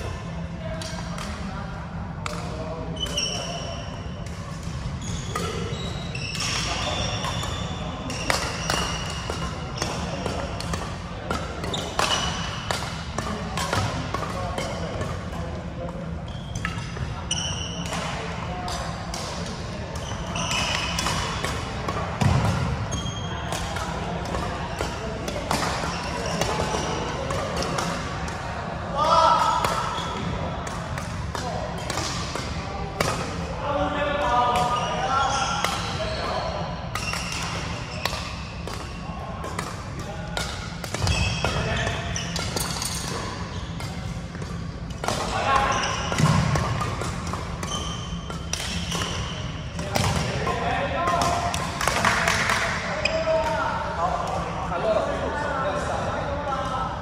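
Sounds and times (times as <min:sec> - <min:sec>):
rackets striking shuttlecock: 0:04.2 - 0:28.4, 0:29.4 - 0:33.5, 0:36.9 - 0:53.6.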